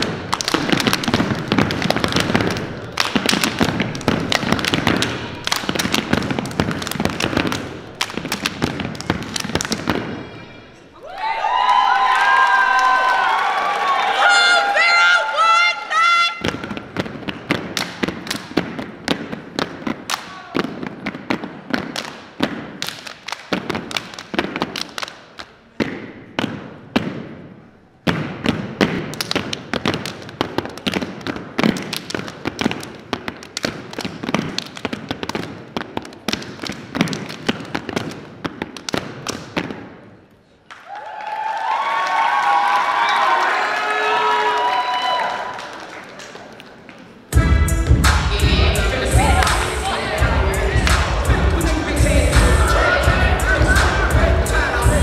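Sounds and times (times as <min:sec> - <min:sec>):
hand claps and body slaps: 0:00.0 - 0:10.0, 0:17.0 - 0:20.4, 0:21.0 - 0:25.9, 0:29.0 - 0:39.8, 0:49.4 - 0:49.7
many voices shouting: 0:11.0 - 0:16.4, 0:40.9 - 0:45.6.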